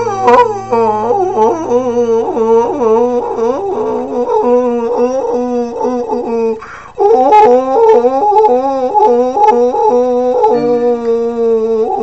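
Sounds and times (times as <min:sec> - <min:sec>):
man wailing: 0:00.0 - 0:12.0
low keyboard note: 0:10.5 - 0:11.8.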